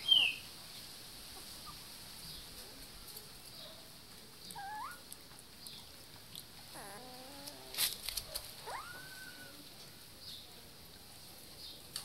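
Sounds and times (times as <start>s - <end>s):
puppies whining: 4.5s - 5.1s, 6.7s - 9.7s.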